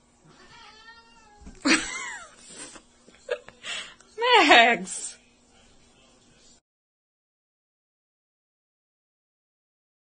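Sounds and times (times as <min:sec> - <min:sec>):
cat meowing and yowling: 0:00.3 - 0:01.5.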